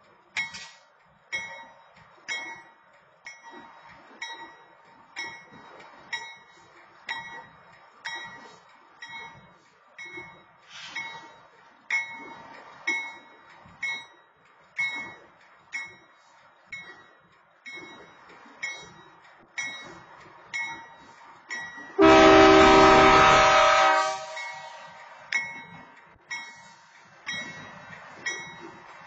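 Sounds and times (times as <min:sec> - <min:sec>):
railroad crossing bell ringing: 0:00.4 - 0:29.0
locomotive horn blast: 0:22.0 - 0:25.0.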